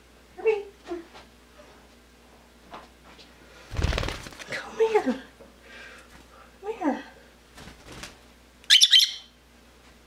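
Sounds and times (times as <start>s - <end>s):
lovebird chirping: 8.7s - 9.3s.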